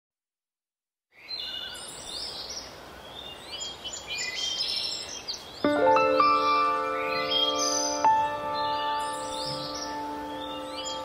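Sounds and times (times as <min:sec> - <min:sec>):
birds chirping and whistling: 0:01.2 - 0:11.0
music with sustained notes: 0:05.6 - 0:11.0.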